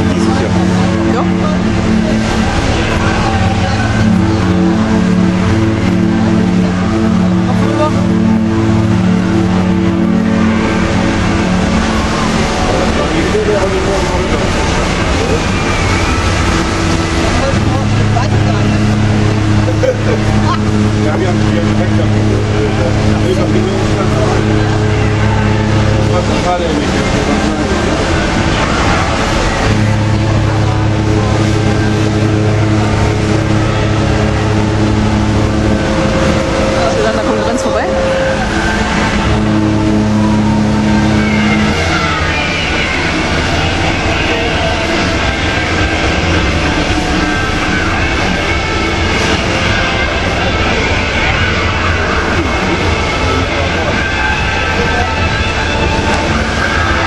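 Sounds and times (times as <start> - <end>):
deep ship horn blasts: 0.0 - 57.0
harbour noise: 0.0 - 57.0
higher horn tone: 0.0 - 57.0
voices: 0.0 - 57.0.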